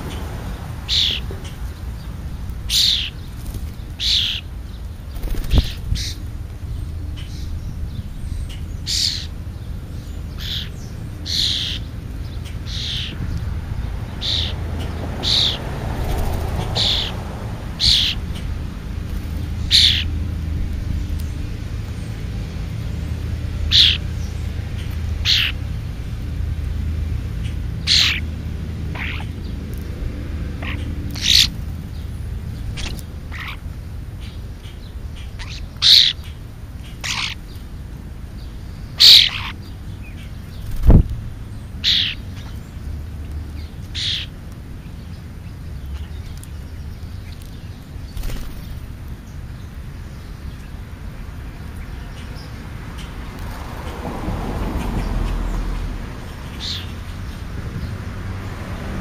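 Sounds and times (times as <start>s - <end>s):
steady low rumble: 0.0s - 44.0s
bird chirping: 0.9s - 17.2s, 17.8s - 20.2s, 21.0s - 25.7s, 27.4s - 29.6s, 30.6s - 53.2s, 54.8s - 58.0s.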